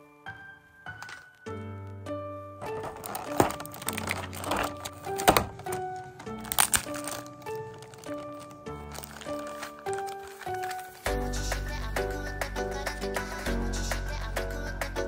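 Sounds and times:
background music simple melody: 0.0 - 15.0
plastic packaging crinkling: 0.9 - 1.5, 2.6 - 11.1.

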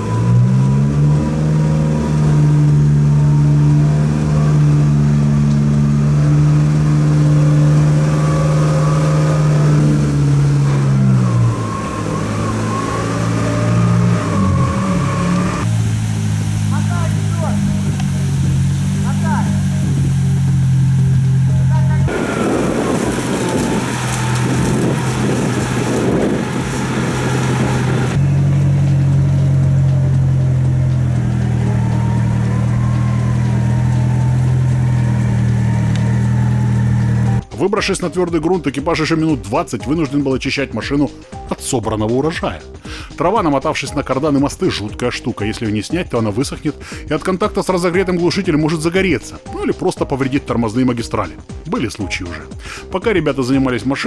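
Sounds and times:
off-road vehicle engine under load: 0.0 - 54.0.

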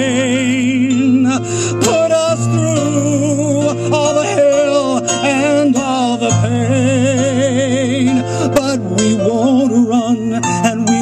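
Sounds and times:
instrumental backing: 0.0 - 11.0
man singing with vibrato: 0.0 - 11.0.

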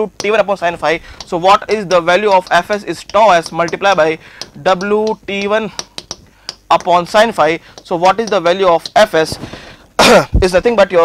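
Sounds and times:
man speaking: 0.0 - 5.8, 6.7 - 9.4, 10.0 - 11.0
marker tapping and writing on board: 0.0 - 9.7.

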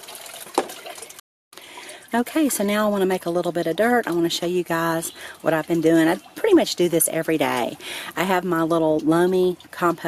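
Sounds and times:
fountain water trickling: 0.0 - 10.0.

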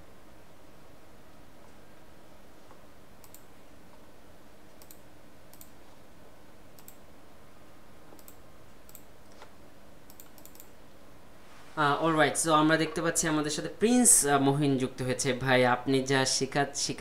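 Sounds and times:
faint room hum: 0.0 - 17.0
computer mouse clicking: 2.6 - 4.0, 4.7 - 5.9, 6.8 - 7.0, 8.1 - 10.8.

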